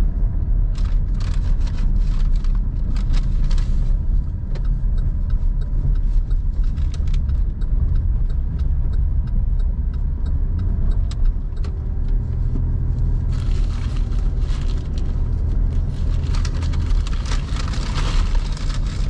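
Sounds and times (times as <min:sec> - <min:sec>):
road and engine rumble: 0:00.0 - 0:19.0
turn signal ticking: 0:00.1 - 0:19.0.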